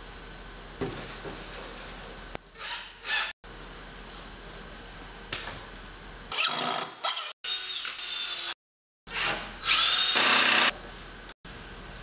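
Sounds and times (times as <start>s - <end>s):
power drill whirring: 6.4s - 10.7s.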